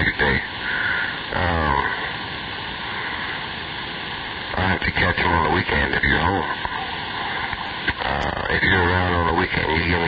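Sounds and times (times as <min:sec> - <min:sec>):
voice over radio: 0:00.0 - 0:02.1, 0:04.5 - 0:10.0
radio static hiss: 0:00.0 - 0:10.0.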